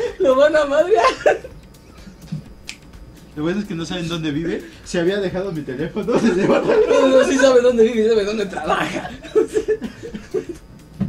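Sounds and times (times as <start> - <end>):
man laughing: 0.0 - 2.4, 6.0 - 10.7.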